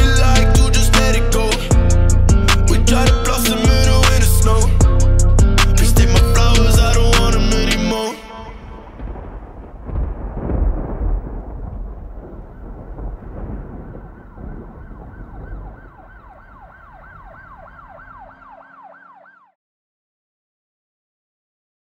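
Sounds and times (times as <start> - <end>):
low rumbling noise: 8.2 - 18.4
siren yelping: 12.2 - 19.6.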